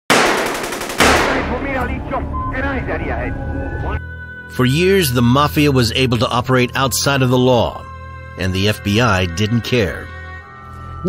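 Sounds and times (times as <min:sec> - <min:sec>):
automatic gunfire: 0:00.1 - 0:01.7.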